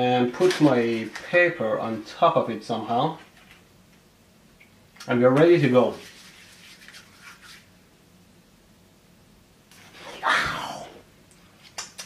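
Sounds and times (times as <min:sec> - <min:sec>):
hands rubbing together: 0:05.9 - 0:07.7.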